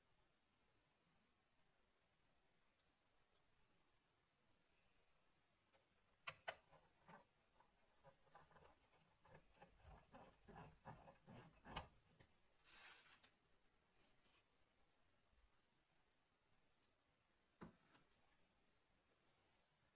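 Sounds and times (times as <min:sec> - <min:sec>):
screwdriver ticking and scraping: 0:06.2 - 0:12.3.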